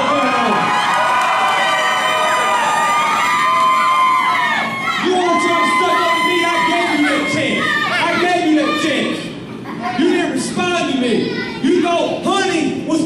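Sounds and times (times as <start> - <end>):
crowd of children shouting: 0.0 - 9.3.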